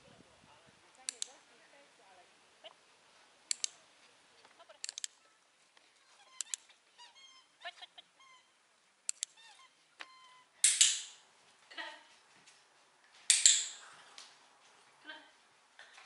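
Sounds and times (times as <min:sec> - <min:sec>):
dog-training clicker clicks: 0:01.1 - 0:01.4, 0:03.5 - 0:03.8, 0:04.8 - 0:05.2, 0:06.4 - 0:06.6, 0:09.1 - 0:09.3, 0:13.3 - 0:13.7
high squeaky calls: 0:06.0 - 0:08.6, 0:09.2 - 0:10.9.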